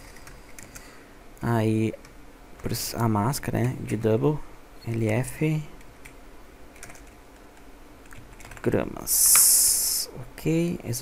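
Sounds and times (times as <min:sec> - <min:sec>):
keyboard typing: 0:06.8 - 0:07.2, 0:08.0 - 0:08.7.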